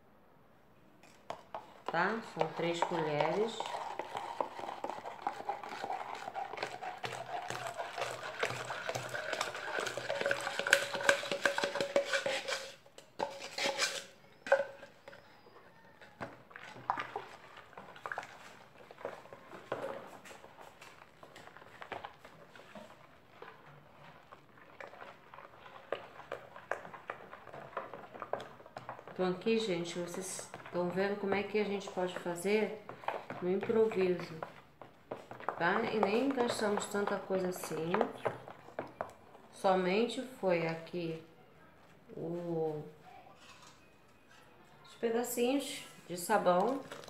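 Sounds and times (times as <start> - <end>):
spoon stirring mixture: 1.0 - 47.0
liquid pouring into basin: 3.5 - 11.8.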